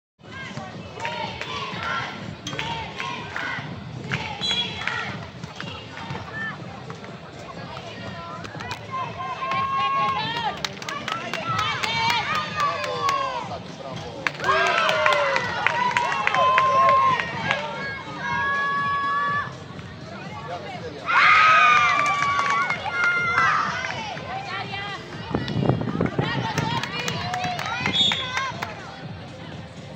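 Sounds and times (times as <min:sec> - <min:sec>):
young players shouting: 0:14.4 - 0:19.5.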